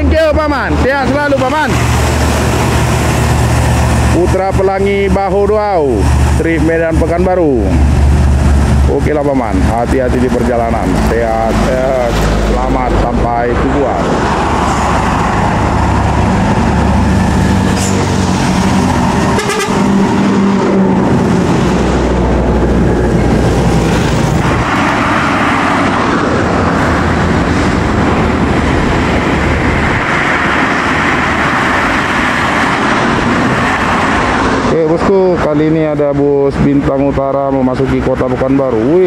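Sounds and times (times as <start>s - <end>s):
diesel trucks driving past: 0.0s - 39.0s
passing traffic rush: 0.0s - 39.0s.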